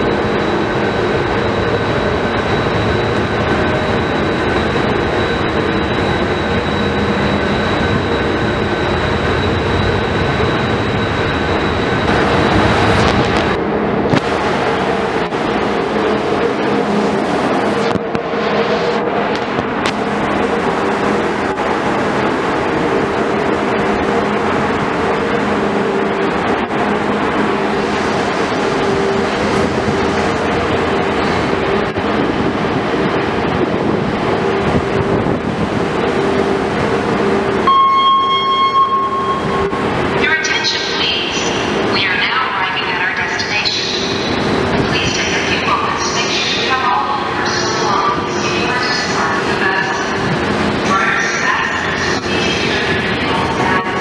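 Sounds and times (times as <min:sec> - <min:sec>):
ship engines droning: 0:00.0 - 0:54.0
steady high tone: 0:00.0 - 0:54.0.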